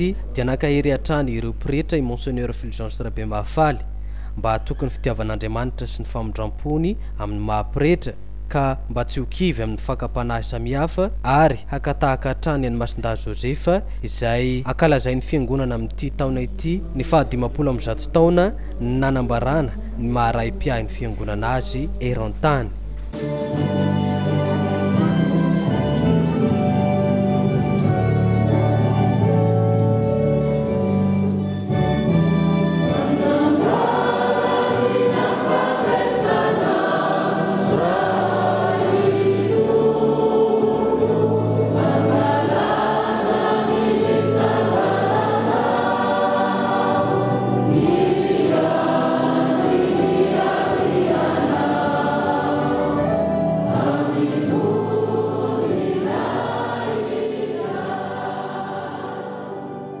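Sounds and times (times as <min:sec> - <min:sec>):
low sustained bass notes: 0:00.0 - 0:56.8
church choir singing hymn: 0:16.8 - 1:00.0.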